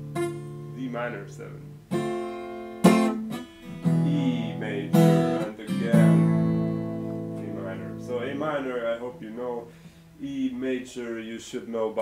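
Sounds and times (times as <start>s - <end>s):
acoustic guitar chord strummed: 0.0s - 10.2s.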